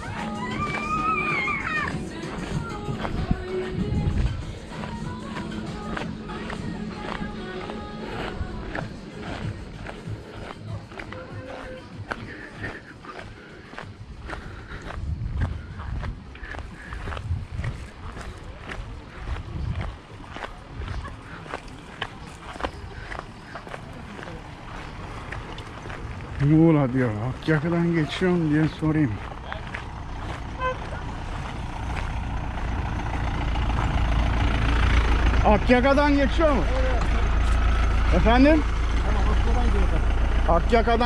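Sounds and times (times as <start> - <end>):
background music: 0.0 - 13.2
footsteps on gravel: 0.0 - 34.2
people's voices: 0.0 - 41.0.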